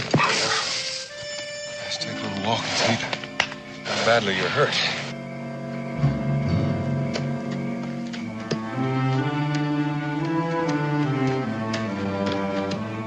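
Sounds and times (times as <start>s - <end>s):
orchestral music: 0.0s - 13.0s.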